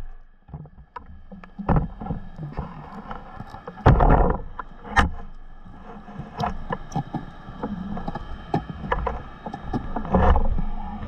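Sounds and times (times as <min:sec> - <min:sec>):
water: 0:00.0 - 0:11.0.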